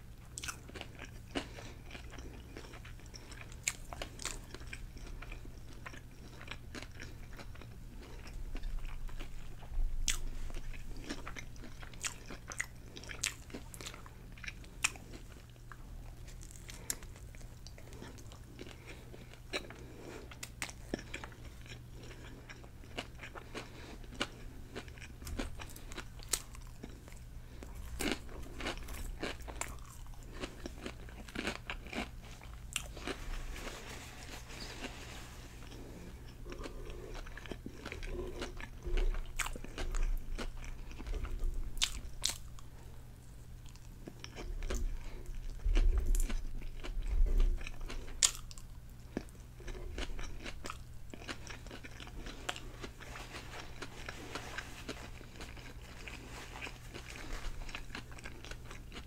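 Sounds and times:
biting and chewing sandwich: 0.2s - 42.8s, 43.6s - 59.0s.

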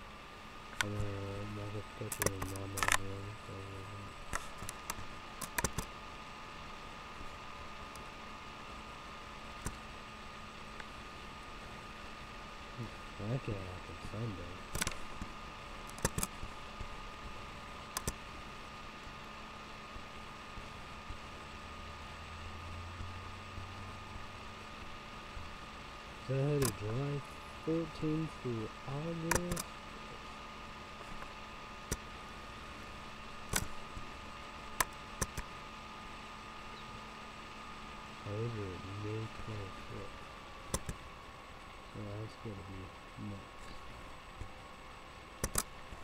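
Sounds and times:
low room hum: 0.0s - 46.0s
sharp clicks: 2.0s - 3.2s, 4.3s - 5.9s, 14.7s - 16.9s, 17.9s - 18.2s, 26.4s - 27.1s, 28.9s - 29.8s, 33.5s - 34.1s, 34.8s - 35.5s, 40.7s - 41.1s, 45.4s - 45.8s.

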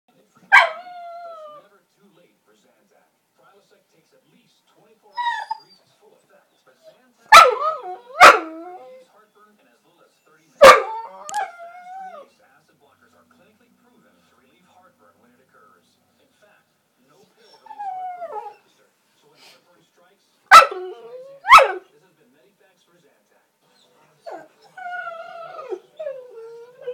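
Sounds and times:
dog bark-like calls: 0.5s - 0.9s, 7.3s - 8.7s, 10.6s - 11.5s, 20.5s - 21.8s
dog whining: 0.5s - 1.6s, 5.1s - 5.9s, 6.8s - 9.1s, 10.6s - 12.3s, 17.4s - 18.7s, 20.5s - 21.8s, 23.7s - 26.9s.

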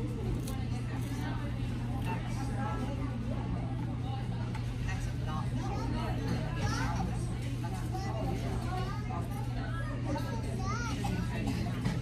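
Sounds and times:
diners talking indistinctly: 0.0s - 12.0s.

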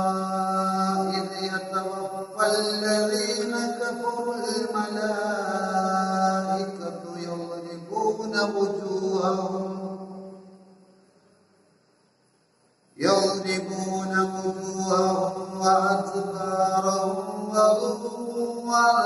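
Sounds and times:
man chanting melodically: 0.0s - 10.4s, 13.0s - 19.0s.

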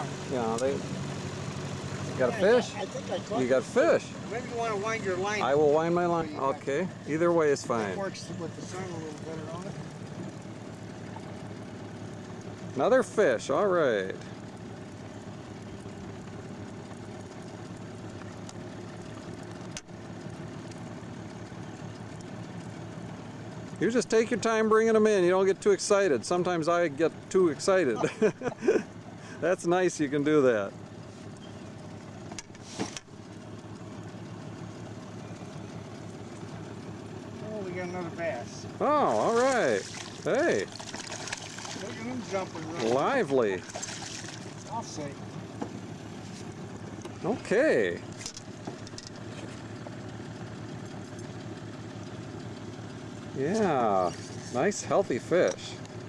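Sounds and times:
outboard motor idling: 0.0s - 56.0s
fish splashing in water: 39.3s - 44.7s.

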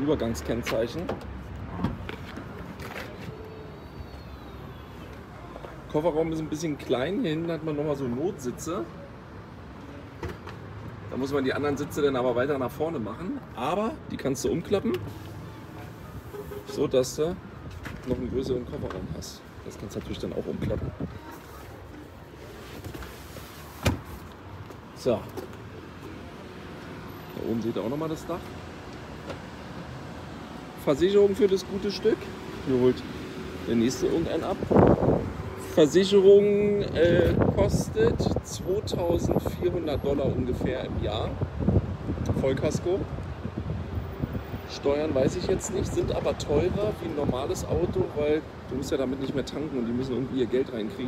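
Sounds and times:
car seatback thumping down: 23.8s - 24.2s.

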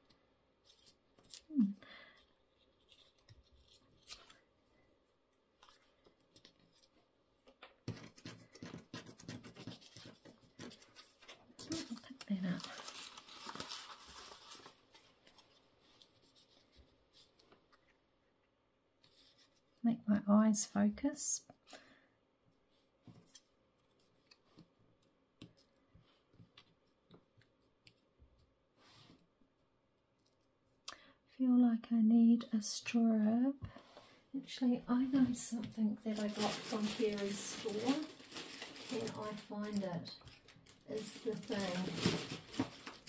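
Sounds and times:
person humming: 1.5s - 1.8s
paper rustling and scraping: 7.6s - 17.8s, 35.1s - 43.0s.

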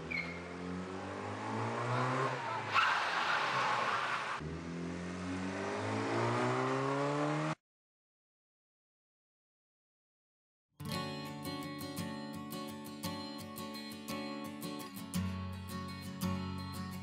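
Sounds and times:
car engine accelerating: 0.0s - 7.6s
road noise rush: 0.0s - 7.6s.

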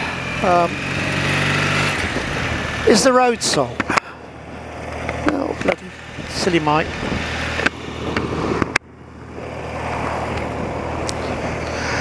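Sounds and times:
motorcycle engine hum: 0.0s - 12.0s
wind rush: 6.1s - 12.0s.

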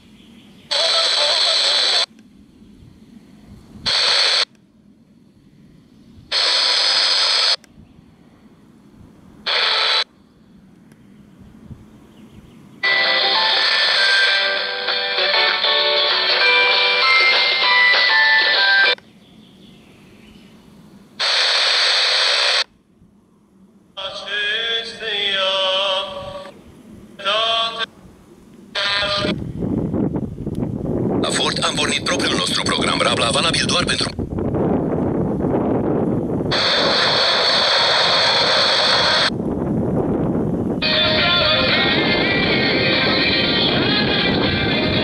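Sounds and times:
radio static hiss: 0.0s - 2.4s, 3.0s - 7.7s, 9.4s - 10.2s, 13.1s - 19.0s, 21.2s - 22.7s, 28.6s - 29.4s, 31.2s - 34.3s, 36.5s - 39.3s
radio station music: 0.7s - 2.1s, 31.2s - 34.2s.

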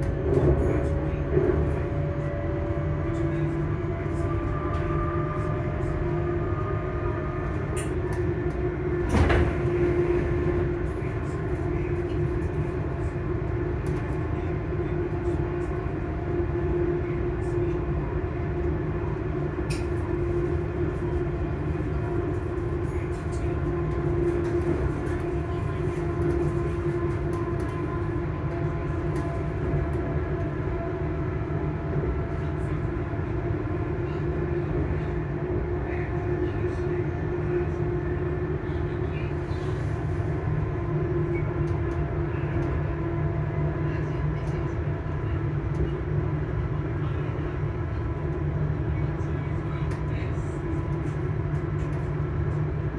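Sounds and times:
wheels rumbling on rails: 0.0s - 43.5s.

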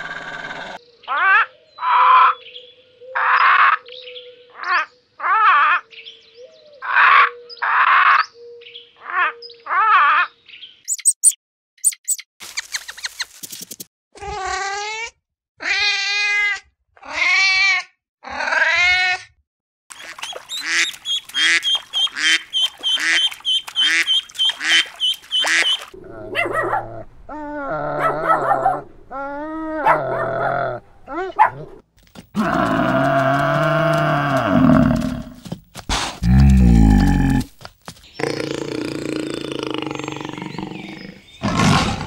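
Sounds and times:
ducklings peeping: 20.0s - 25.9s
duck calls: 20.0s - 26.0s
water buffalo low call: 32.4s - 37.5s.

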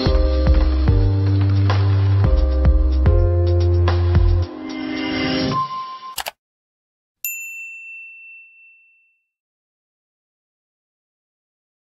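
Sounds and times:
short clicks: 6.2s - 6.4s
bright ding: 7.3s - 9.4s.

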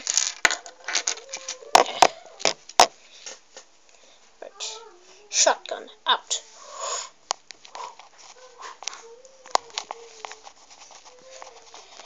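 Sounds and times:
boy saying a word: 4.4s - 6.4s.

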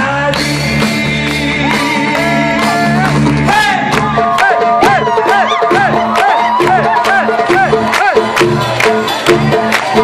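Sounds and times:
crowd noise: 0.0s - 10.0s
live band playing pop music: 0.0s - 10.0s.

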